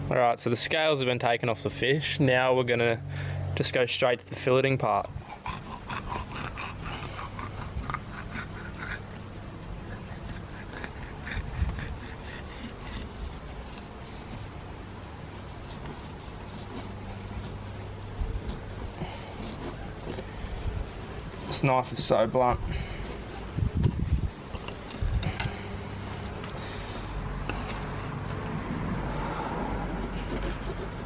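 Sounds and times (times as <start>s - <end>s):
steady low hum: 0.0s - 31.0s
knife scraping fish: 5.6s - 21.6s.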